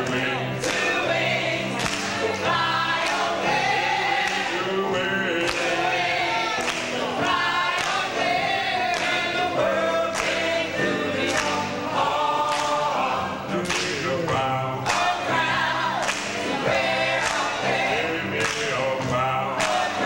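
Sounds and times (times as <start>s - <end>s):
gospel choir singing in harmony: 0.0s - 20.0s.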